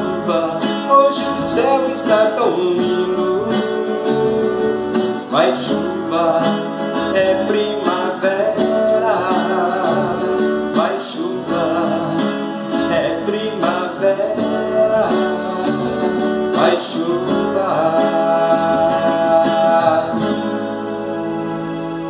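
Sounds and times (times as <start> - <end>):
man singing: 0.0 - 21.5
classical guitars strummed: 0.0 - 22.0.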